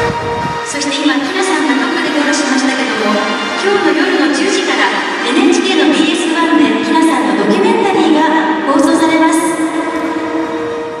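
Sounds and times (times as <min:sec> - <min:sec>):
echoing public address tones: 0:00.0 - 0:11.0.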